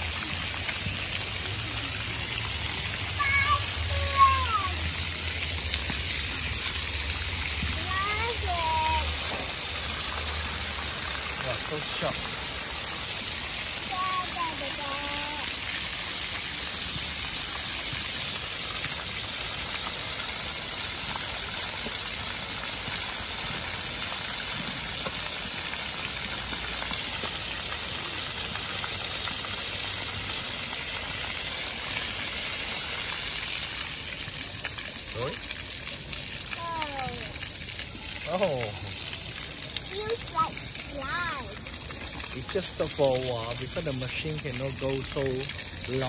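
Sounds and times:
fountain water splashing: 0:00.0 - 0:46.0.

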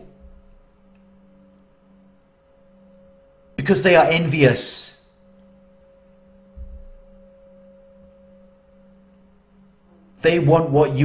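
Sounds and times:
ambient music drone: 0:00.0 - 0:11.0
soft low thump: 0:06.5 - 0:07.1.

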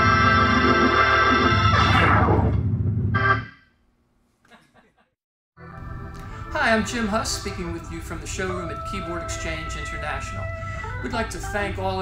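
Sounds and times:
held organ bass: 0:00.0 - 0:03.5, 0:05.6 - 0:12.0
organ glissando and final chord: 0:00.0 - 0:03.5.

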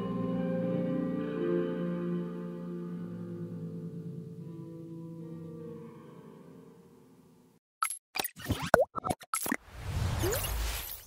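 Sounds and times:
whoosh: 0:09.6 - 0:11.0.

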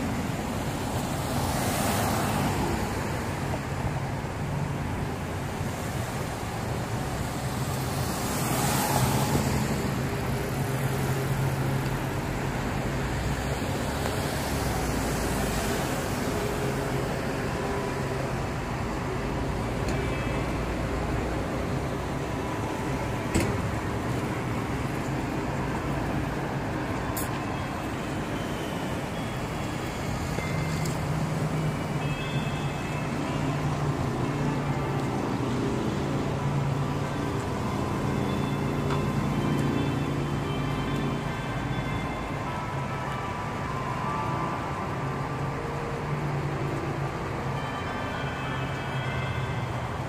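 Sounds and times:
street traffic noise: 0:00.0 - 0:50.0.

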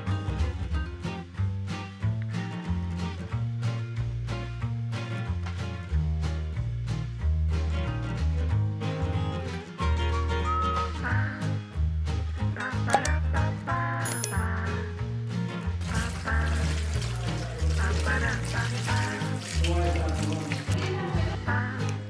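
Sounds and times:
background music with bass line: 0:00.0 - 0:22.0
tap water splashing into colander: 0:15.8 - 0:20.9.

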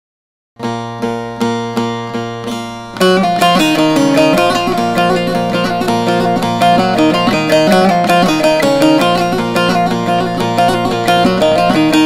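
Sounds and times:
plucked lute strokes: 0:00.6 - 0:12.0.

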